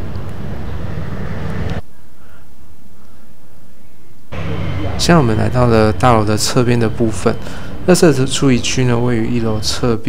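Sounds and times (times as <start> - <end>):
low rumble of city traffic: 0.0 - 10.0.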